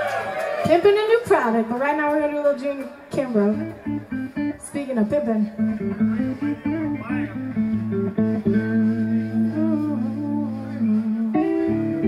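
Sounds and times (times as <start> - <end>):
electric guitar with bends: 2.9 - 12.0
sustained bass guitar notes: 3.5 - 12.0.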